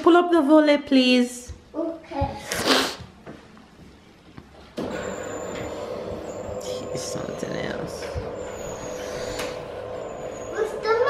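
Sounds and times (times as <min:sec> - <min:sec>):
roller shutter motor humming: 0:04.8 - 0:11.0.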